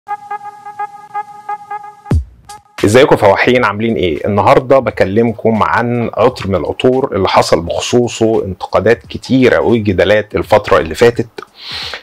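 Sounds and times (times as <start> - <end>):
pulsing electronic horn tone: 0.1 - 2.8.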